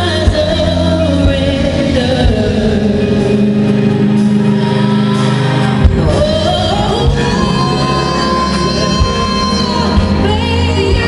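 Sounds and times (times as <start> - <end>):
live slow ballad music: 0.0 - 11.0.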